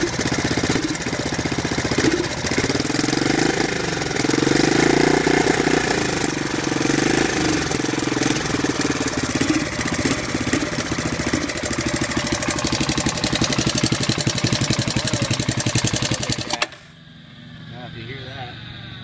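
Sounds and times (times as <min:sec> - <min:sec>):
engine revving: 0:00.0 - 0:19.0.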